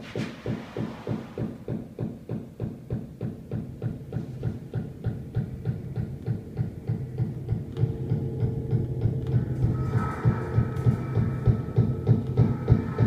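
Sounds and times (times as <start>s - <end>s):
low throbbing pulse: 5.1s - 13.0s
steady held tone: 7.6s - 13.0s
higher held tones: 7.8s - 13.0s.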